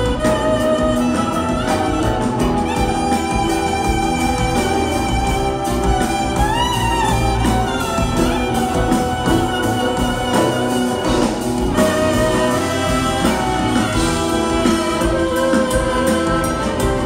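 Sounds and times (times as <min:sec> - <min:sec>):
clarinet solo: 0:00.0 - 0:17.0
live band with drums: 0:00.0 - 0:17.0.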